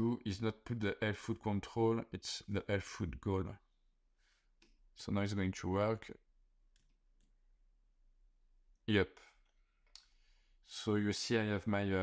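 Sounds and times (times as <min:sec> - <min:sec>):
computer mouse clicks: 0:06.7 - 0:07.4.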